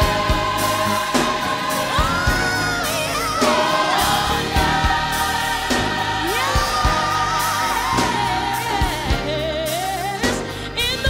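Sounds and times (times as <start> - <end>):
choir singing with vibrato: 0.0 - 10.5
band playing steady beat: 0.0 - 10.6.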